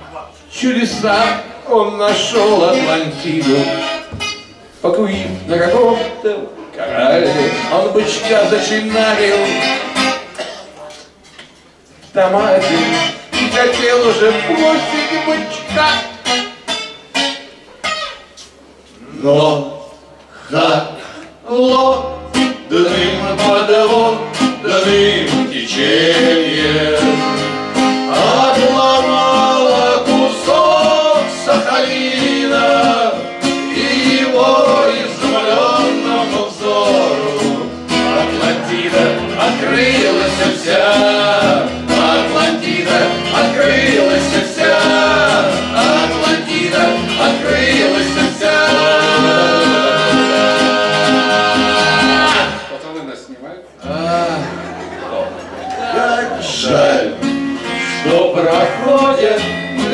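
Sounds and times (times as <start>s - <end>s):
acoustic guitars playing: 0.0s - 19.7s, 20.8s - 52.8s, 53.8s - 59.9s
men singing: 0.8s - 4.2s, 6.8s - 10.0s, 12.2s - 15.9s, 20.4s - 52.8s, 53.8s - 59.9s.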